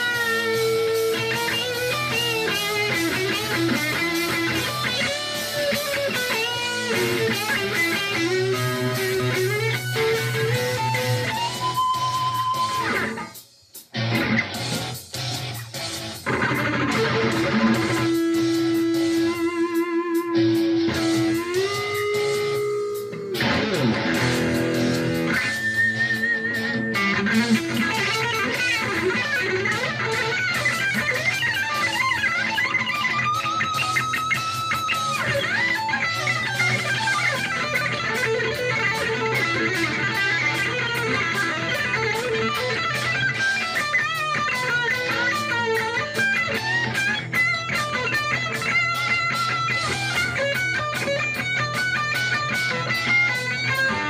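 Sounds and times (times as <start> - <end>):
electric guitar lead: 0.0 - 54.0
rock backing track: 0.0 - 54.0.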